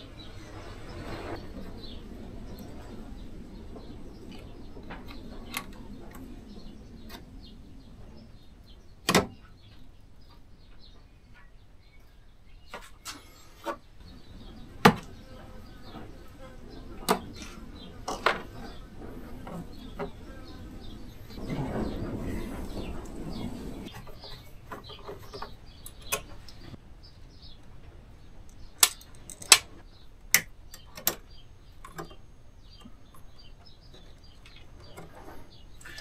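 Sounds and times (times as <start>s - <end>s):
rustling and scraping: 12.7s - 25.6s, 33.6s - 36.0s
clicks and knocks of metal parts: 28.5s - 32.2s.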